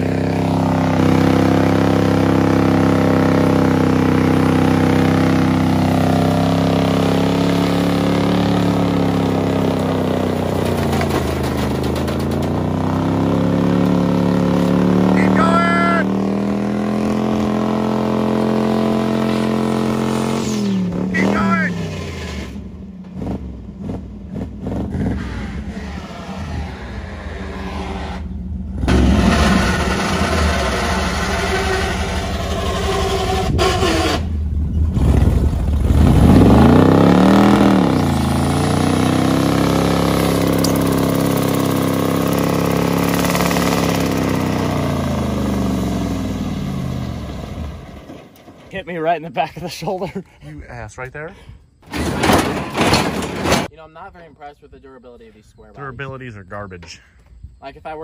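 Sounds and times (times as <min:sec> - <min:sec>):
pickup truck engine revving: 0:00.0 - 0:48.0.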